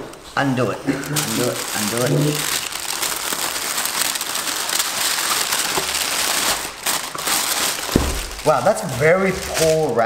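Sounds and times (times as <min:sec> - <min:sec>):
tissue paper crinkling: 0:00.4 - 0:10.0.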